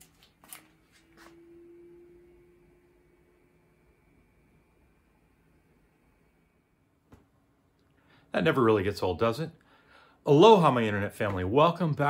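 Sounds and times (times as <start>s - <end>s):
printer fans humming: 0.0s - 7.8s
thin high whine: 0.0s - 9.5s.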